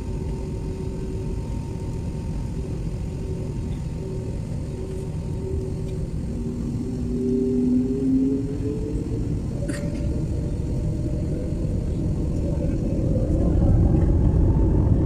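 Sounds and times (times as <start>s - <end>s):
jet engine whine: 0.0s - 15.0s
jet engines rumbling: 0.0s - 15.0s.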